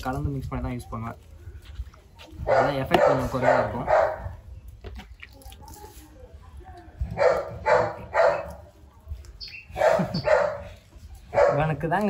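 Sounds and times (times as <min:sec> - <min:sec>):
puppy barking: 0:02.4 - 0:04.3, 0:07.2 - 0:08.7, 0:09.7 - 0:10.7, 0:11.3 - 0:11.8.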